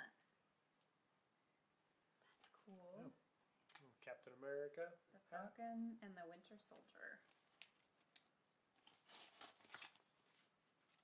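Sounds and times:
fabric and packaging rustling: 6.7s - 11.0s.

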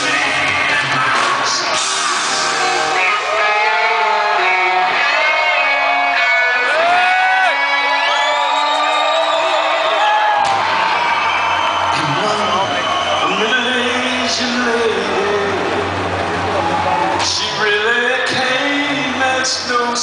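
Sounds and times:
rock band playing loudly: 0.0s - 20.0s.

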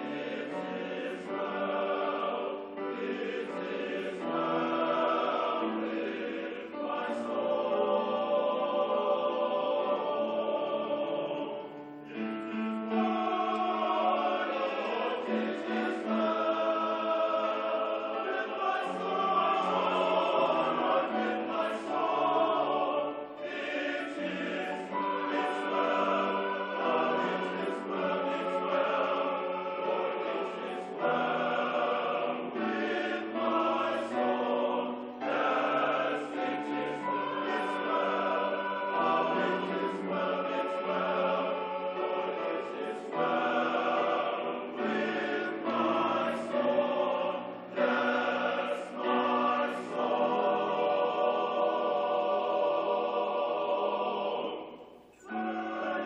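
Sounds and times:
male choir singing: 0.0s - 56.0s.

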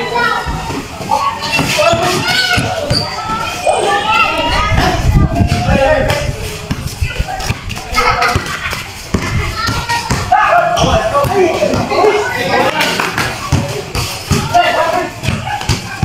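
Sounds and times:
people shouting and chattering: 0.0s - 16.0s
footsteps on concrete court: 0.3s - 16.0s
basketball bouncing on concrete: 1.5s - 3.1s, 5.5s - 12.1s, 13.1s - 16.0s.

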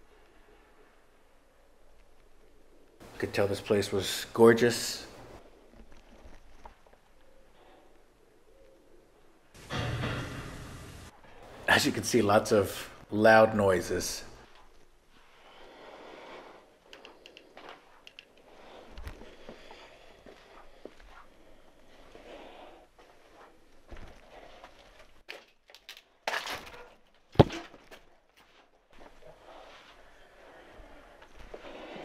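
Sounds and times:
scattered clicks: 16.9s - 19.2s.

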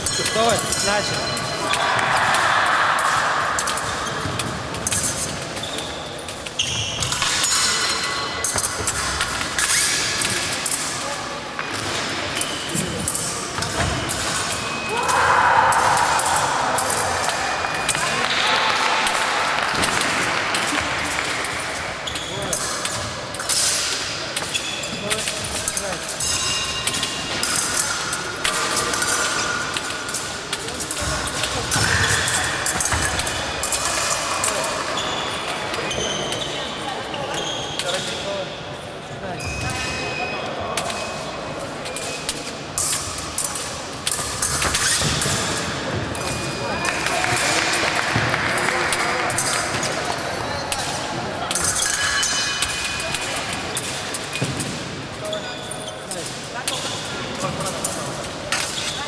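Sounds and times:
voices in echoing hall: 0.0s - 59.0s.

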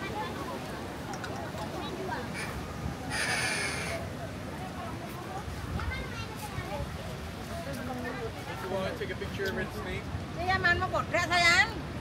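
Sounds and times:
crowd chatter: 0.0s - 12.0s
loud raspy call: 2.3s - 4.0s.

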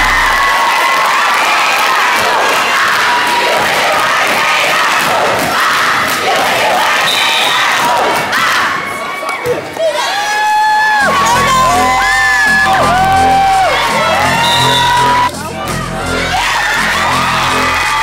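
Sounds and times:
crowd cheering and shouting: 0.0s - 18.0s.

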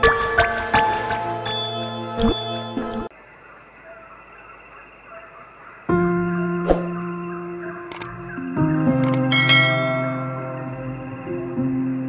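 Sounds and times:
ringing bell chime: 1.4s - 3.1s, 9.2s - 10.7s
soft background music: 5.8s - 12.0s
mouse click: 7.9s - 8.1s.

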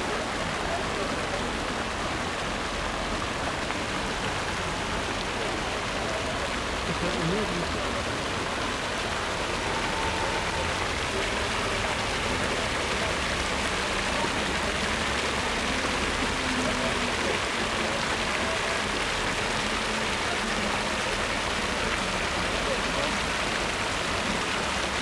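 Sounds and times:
water flowing in fountain: 0.0s - 25.0s.

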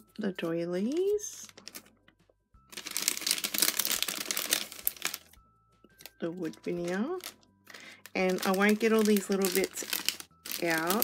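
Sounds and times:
plastic bag crinkling: 0.9s - 2.0s, 2.7s - 5.4s, 6.0s - 11.0s.

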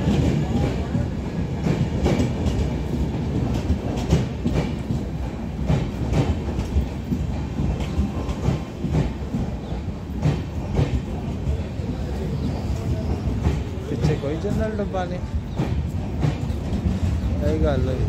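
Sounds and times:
train wheels rumbling on rail: 0.0s - 18.0s.

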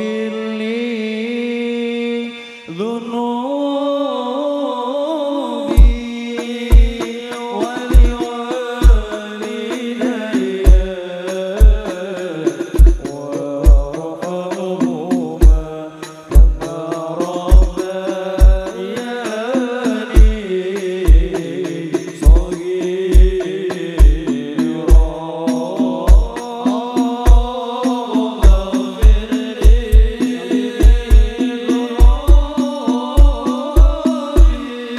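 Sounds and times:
devotional singing: 0.0s - 34.9s
frame drums: 5.7s - 34.9s
deep drum stroke: 16.3s - 18.8s.

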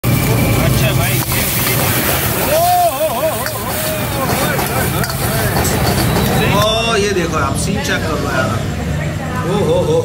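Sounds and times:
gas wok burner rumbling: 0.0s - 10.0s
voices: 0.2s - 10.0s.

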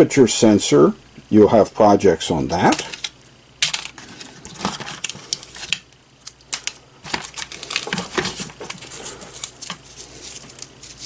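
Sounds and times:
parts clattering in plastic box: 2.7s - 5.8s, 6.5s - 10.4s.

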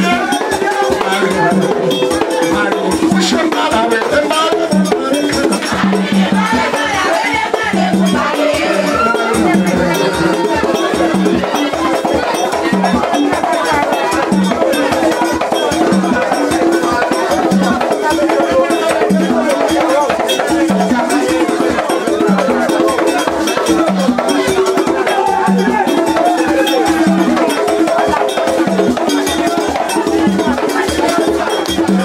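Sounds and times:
group of voices singing: 0.0s - 32.0s
low drum beats: 0.9s - 13.1s.

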